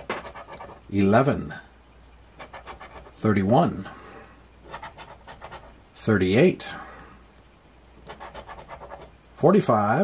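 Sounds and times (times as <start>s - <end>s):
coin scraping scratch ticket: 0.0s - 0.9s, 2.4s - 3.2s, 4.6s - 5.7s, 8.0s - 9.1s.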